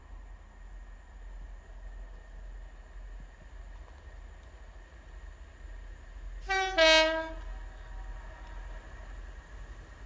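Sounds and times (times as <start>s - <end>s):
two-tone train horn: 6.4s - 8.6s.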